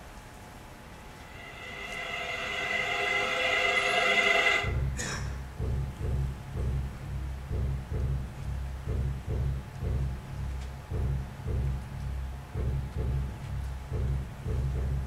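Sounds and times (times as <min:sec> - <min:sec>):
sustained chord-like tone: 0:00.8 - 0:04.9
low deep pulsing beat: 0:00.8 - 0:15.0.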